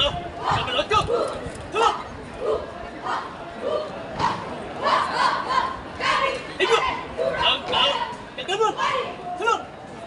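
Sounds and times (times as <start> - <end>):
people shouting short calls: 0.0 - 9.7
murmur of crowd chatter: 0.0 - 10.0.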